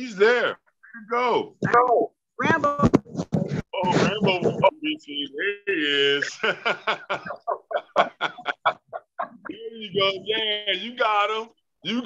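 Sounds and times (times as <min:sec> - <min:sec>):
person laughing: 0:06.2 - 0:10.4.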